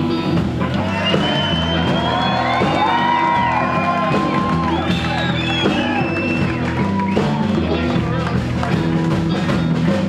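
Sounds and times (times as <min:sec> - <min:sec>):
blues-rock band playing: 0:00.0 - 0:10.0.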